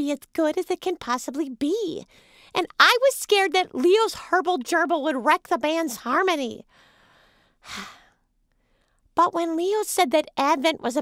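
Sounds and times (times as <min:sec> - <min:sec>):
faint breath: 0:02.0 - 0:02.6, 0:06.7 - 0:09.1
girl sighing: 0:07.7 - 0:08.0.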